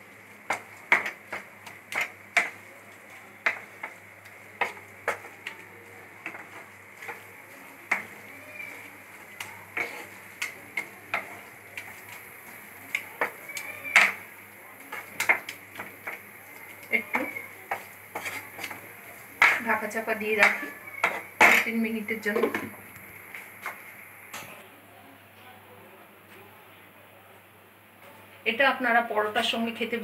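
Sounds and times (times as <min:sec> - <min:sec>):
wooden spatula scraping a pan: 0:00.4 - 0:22.8.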